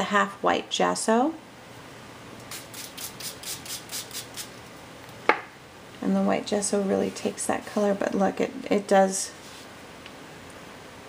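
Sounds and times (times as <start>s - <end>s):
spray bottle spritzes: 2.5s - 4.5s.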